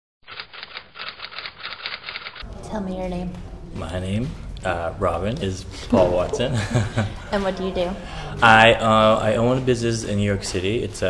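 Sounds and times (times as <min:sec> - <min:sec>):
typewriter keys clacking: 0:00.3 - 0:02.4.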